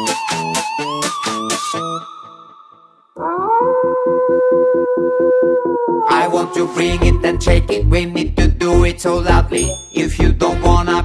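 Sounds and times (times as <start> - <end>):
cartoon wolf howl: 3.2 - 7.5.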